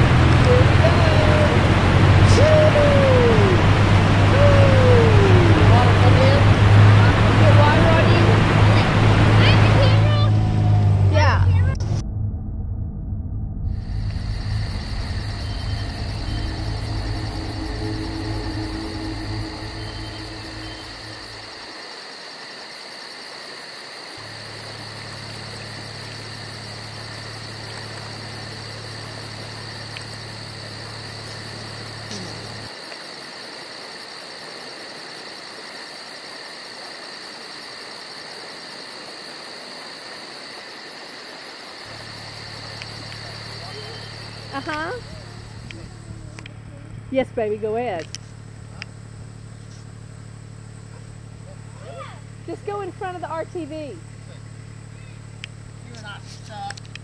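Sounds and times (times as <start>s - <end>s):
low hum: 0.0s - 21.7s, 24.2s - 32.7s, 41.8s - 47.4s
insect chorus buzzing: 13.7s - 57.0s.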